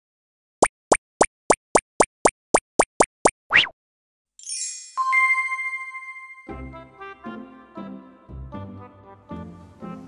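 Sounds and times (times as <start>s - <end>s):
cartoon plopping pops: 0.6s - 3.8s.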